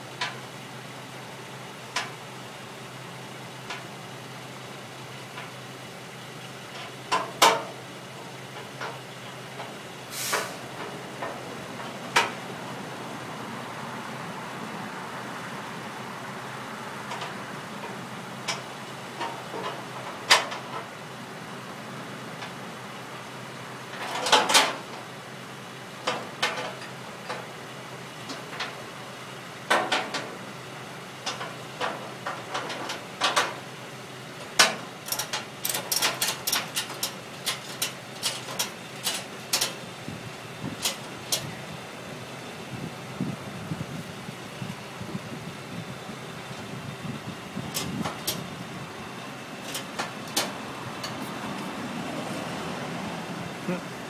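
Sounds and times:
low background rumble: 24.8 - 54.0
gear clicking and rattling: 34.4 - 39.9, 40.7 - 41.5, 46.5 - 51.8.

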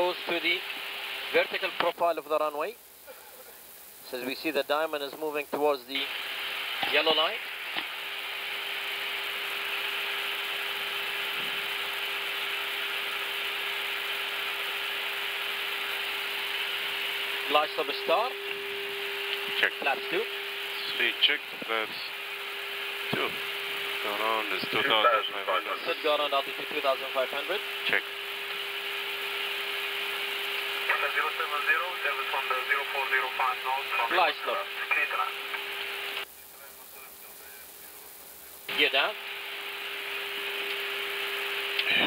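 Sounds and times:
cockpit hiss: 0.0 - 42.0
low hum: 9.6 - 36.2.

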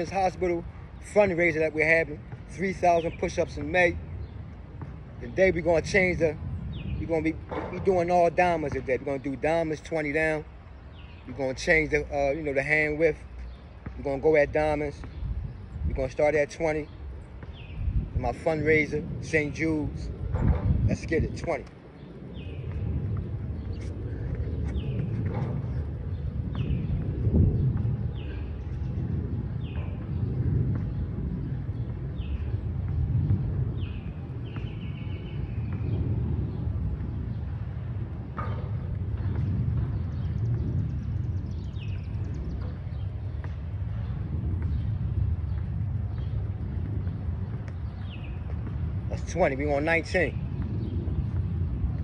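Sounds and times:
bird chirping: 0.0 - 37.5
low outdoor rumble: 0.0 - 52.0.

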